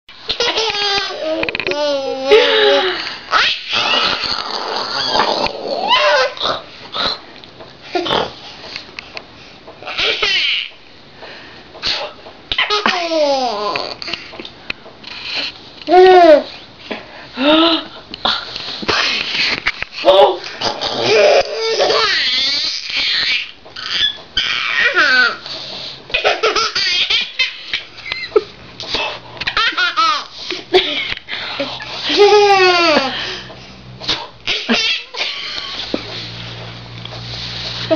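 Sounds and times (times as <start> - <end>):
baby laughing: 0.3 - 4.3, 9.8 - 10.7, 12.5 - 14.0, 20.0 - 25.4, 26.1 - 28.5, 29.4 - 31.2, 32.0 - 33.2, 34.5 - 35.8.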